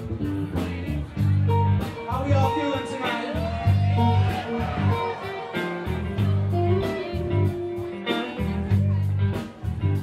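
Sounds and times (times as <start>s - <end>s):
bass guitar: 0.0s - 10.0s
electric guitar with bent notes: 0.0s - 10.0s
steady drum beat: 0.0s - 10.0s.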